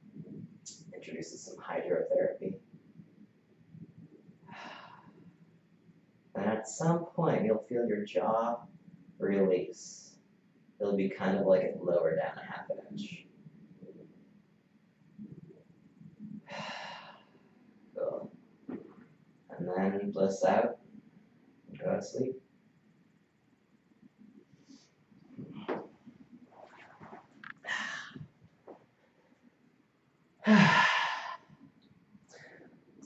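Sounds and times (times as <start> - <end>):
man exhaling a sigh: 30.4 - 31.5.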